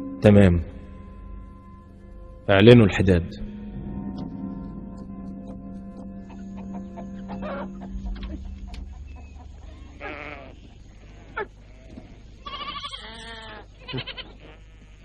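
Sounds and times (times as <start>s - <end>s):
low music drone: 0.0s - 12.4s
sheep and goats bleating: 9.6s - 15.0s.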